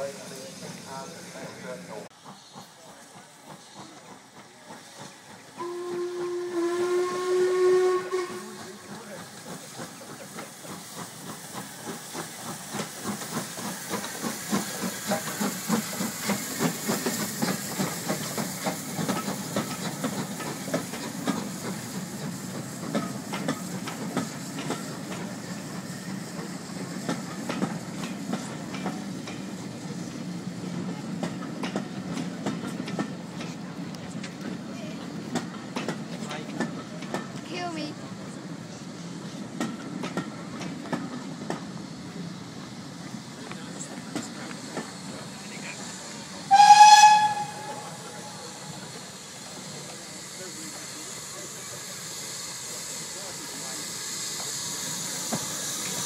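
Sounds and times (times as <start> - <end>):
steam locomotive exhaust beats: 0.0 - 56.0
train rumbling on rails: 0.0 - 56.0
steam locomotive whistle: 5.6 - 9.0, 46.4 - 48.8.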